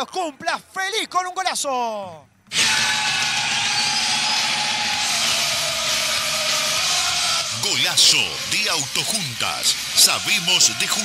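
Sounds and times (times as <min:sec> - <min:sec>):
loud steady hiss: 0:02.5 - 0:11.0.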